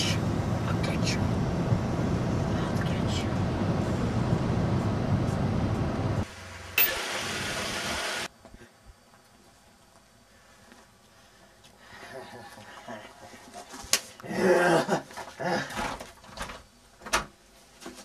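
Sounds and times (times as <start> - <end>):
car engine rumble inside cabin: 0.0 - 6.3.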